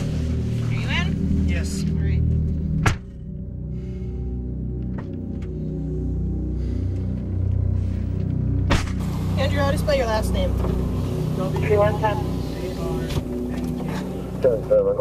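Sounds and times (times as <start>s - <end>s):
low musical drone: 0.0s - 15.0s
vehicle idling hum: 0.0s - 15.0s
indistinct voices: 9.3s - 15.0s.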